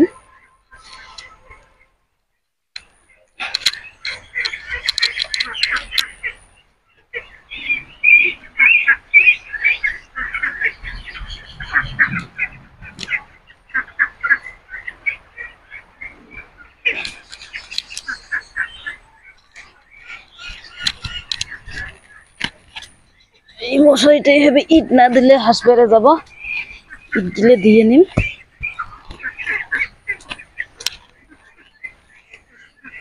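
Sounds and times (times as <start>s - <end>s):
birds chirping: 0.0s - 2.0s, 2.8s - 33.0s.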